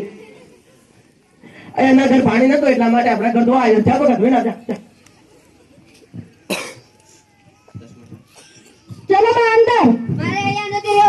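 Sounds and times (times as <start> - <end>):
person coughing: 6.5 - 6.9.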